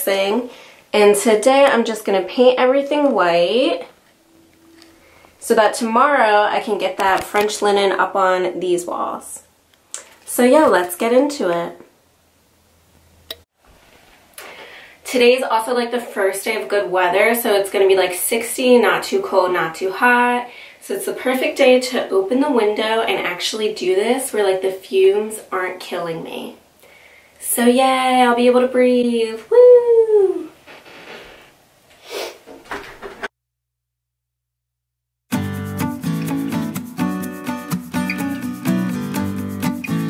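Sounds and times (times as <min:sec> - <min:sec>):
woman cheering woo: 0:29.5 - 0:30.5.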